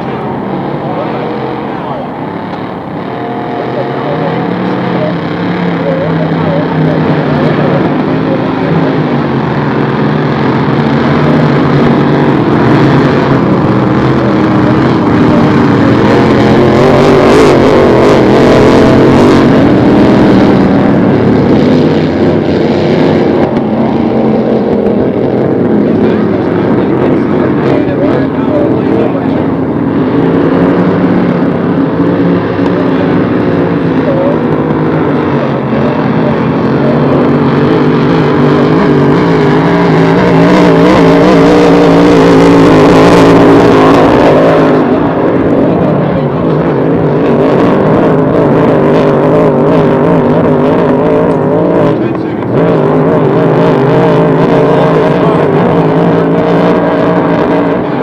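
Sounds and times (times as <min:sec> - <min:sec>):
racing boat engines: 0:00.0 - 0:58.0.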